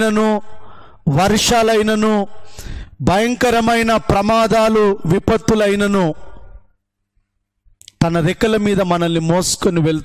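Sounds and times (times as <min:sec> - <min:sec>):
man speaking: 0:00.0 - 0:02.4, 0:03.0 - 0:06.5, 0:07.8 - 0:10.0.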